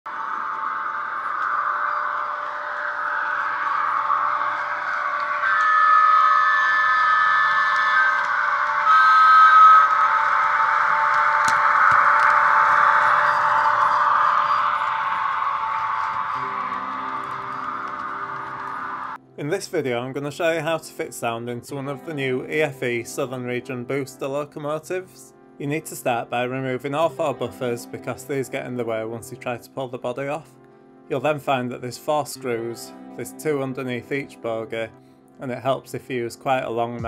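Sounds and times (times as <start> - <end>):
steady pitched tones: 0.1 - 20.2
music: 9.9 - 37.0.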